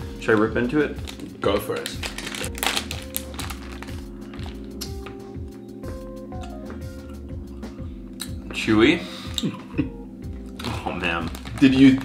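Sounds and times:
background music: 0.0 - 12.0
plastic packet crinkling: 1.0 - 5.0, 10.5 - 12.0.

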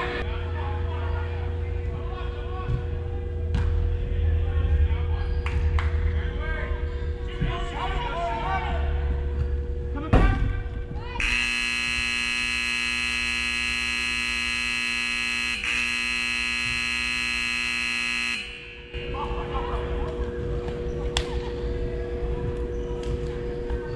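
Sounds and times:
long buzzer blast: 11.2 - 19.0.

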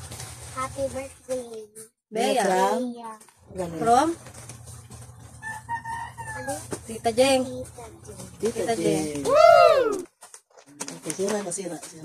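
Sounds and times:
rooster crowing faintly: 5.4 - 6.8.

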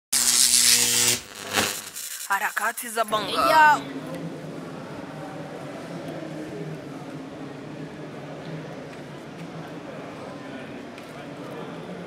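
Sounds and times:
loud electric buzz: 0.1 - 2.5.

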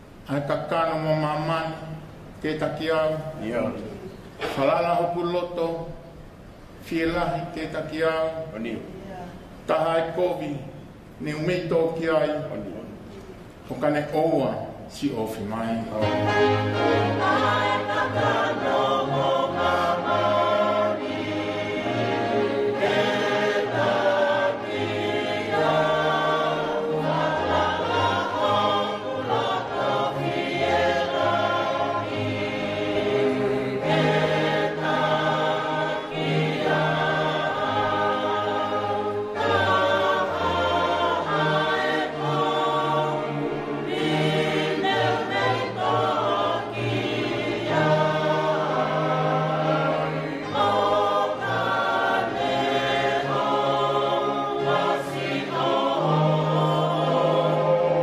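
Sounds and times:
congregation singing a hymn: 0.0 - 8.9, 9.5 - 58.0.

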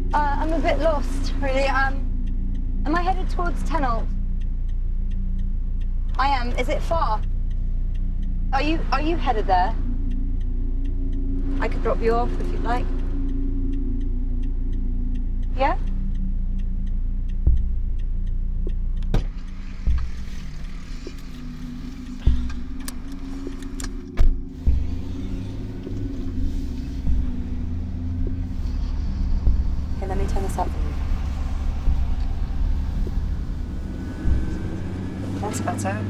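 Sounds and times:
van engine and road rumble: 0.0 - 36.0
knocks and thuds: 19.1 - 20.3, 29.4 - 30.0.

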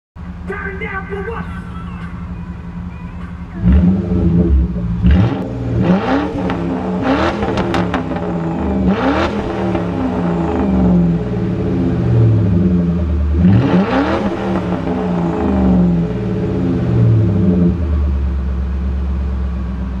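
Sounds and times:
car engine idling and revving: 0.2 - 20.0.

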